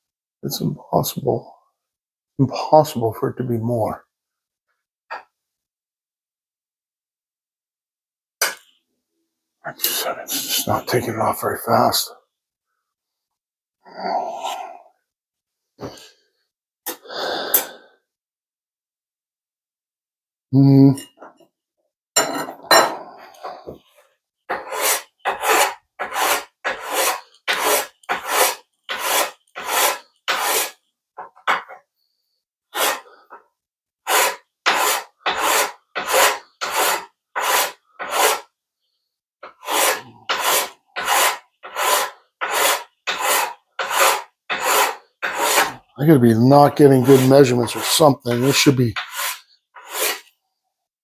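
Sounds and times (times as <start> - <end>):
file rasping on metal: 24.5 - 30.8, 32.7 - 33.3, 34.1 - 38.5, 39.4 - 45.9, 46.8 - 50.3.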